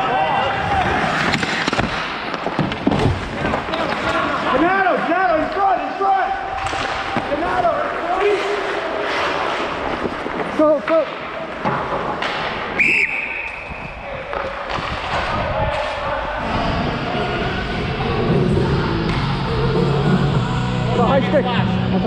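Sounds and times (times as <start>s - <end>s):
players shouting: 3.5s - 11.6s
skates scraping on ice: 6.7s - 12.8s
referee whistle long blast: 12.8s - 14.0s.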